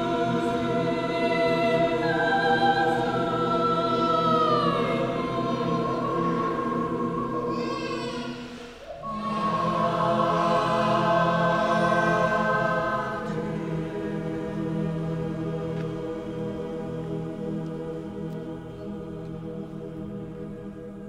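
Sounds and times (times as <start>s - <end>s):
choir singing unaccompanied: 0.0s - 21.0s.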